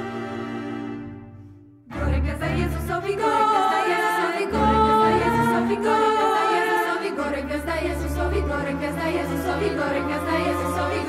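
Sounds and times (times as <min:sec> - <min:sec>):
accordion: 0:00.0 - 0:11.0
strings: 0:00.0 - 0:11.0
mixed choir singing a carol: 0:01.9 - 0:11.0.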